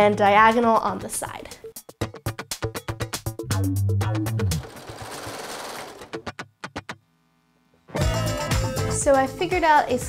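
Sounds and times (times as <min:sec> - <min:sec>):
overlock machine stitching: 0:04.4 - 0:06.2.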